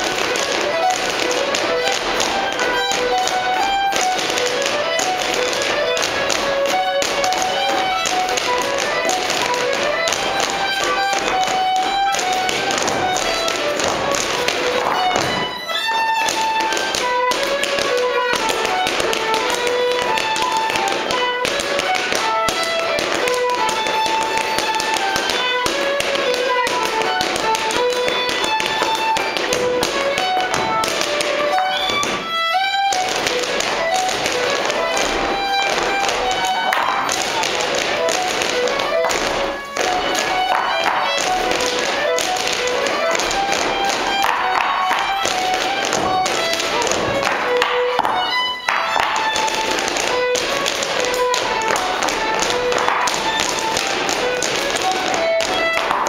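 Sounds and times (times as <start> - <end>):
fiddle playing dance tune: 0.0 - 56.0
shoes tapping on wooden floor: 0.0 - 56.0.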